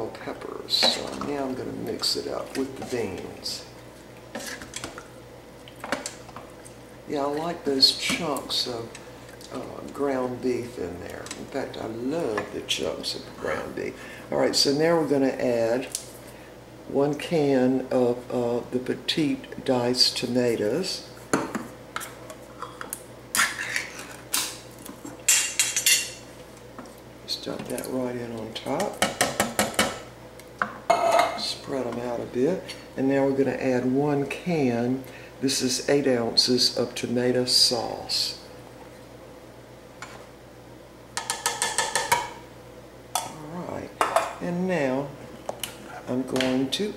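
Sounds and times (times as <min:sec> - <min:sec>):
spatula stirring wet food: 0:00.8 - 0:11.8
kitchenware clattering and scraping: 0:30.9 - 0:31.5
spatula scraping and knocking pot: 0:41.2 - 0:42.3.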